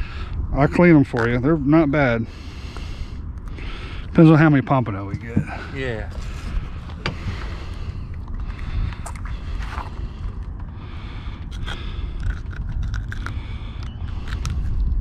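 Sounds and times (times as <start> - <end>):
wind rumbling on microphone: 0.0 - 15.0
pliers clicking and scraping: 11.5 - 14.8.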